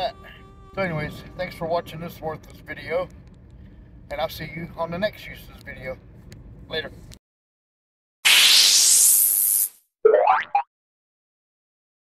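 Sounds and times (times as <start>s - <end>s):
brief electronic blip: 8.3s - 10.6s.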